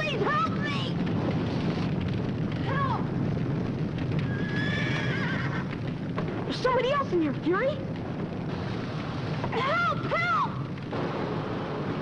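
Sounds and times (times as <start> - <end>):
low rumble: 0.0 - 12.0
horse whinnying: 4.2 - 5.7.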